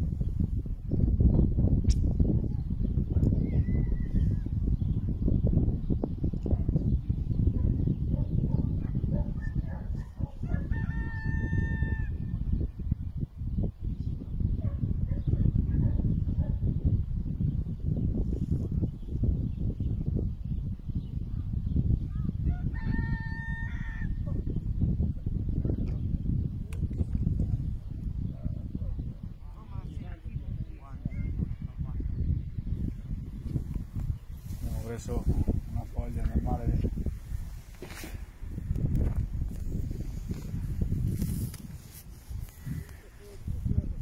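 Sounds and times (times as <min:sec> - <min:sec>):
wind buffeting microphone: 0:00.0 - 0:44.0
rooster crowing: 0:10.4 - 0:12.2, 0:22.5 - 0:24.2.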